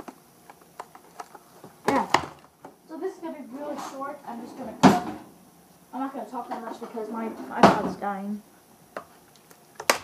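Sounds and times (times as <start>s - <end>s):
loud knocks on plastic tray: 4.8s - 5.2s
person speaking: 5.9s - 8.5s.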